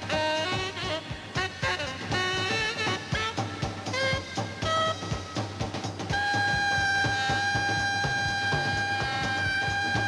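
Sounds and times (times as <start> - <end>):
saxophone long note: 0.0 - 10.0
steady drum beat: 0.0 - 10.0
swing big band music: 0.0 - 10.0.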